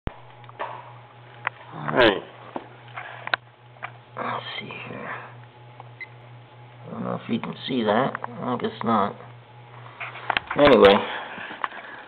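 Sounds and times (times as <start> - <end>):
low electrical hum: 0.1 - 12.0.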